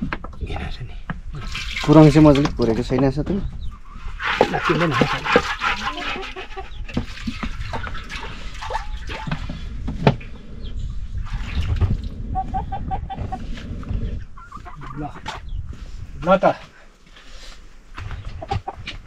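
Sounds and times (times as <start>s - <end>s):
water swishing and splashing: 1.2s - 2.8s, 4.0s - 14.8s
chickens clucking: 3.3s - 16.0s, 17.9s - 19.0s.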